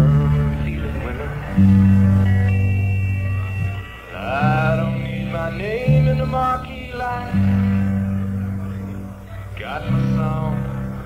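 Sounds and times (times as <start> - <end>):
country band instrumental: 0.0 - 11.0.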